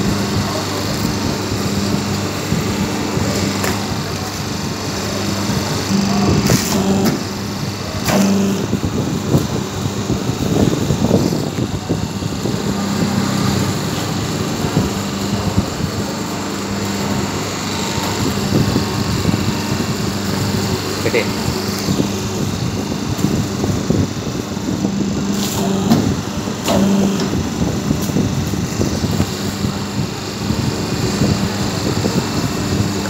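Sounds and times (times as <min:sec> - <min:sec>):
machine motor hum: 0:00.0 - 0:33.0.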